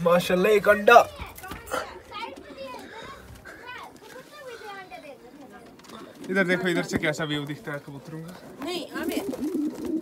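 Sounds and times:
faint children's chatter: 0.9s - 7.0s.

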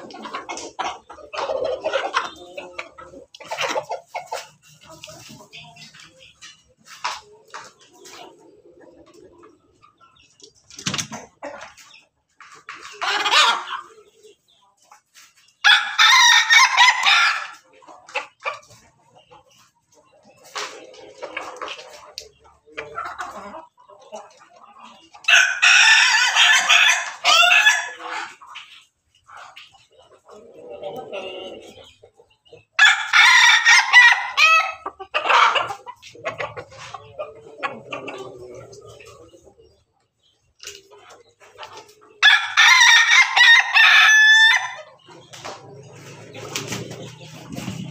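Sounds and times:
chickens clucking: 0.0s - 47.9s.

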